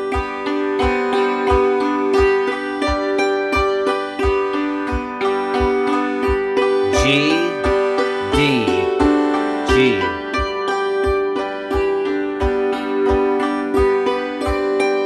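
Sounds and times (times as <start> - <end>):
hammered dulcimer: 0.0 - 15.0.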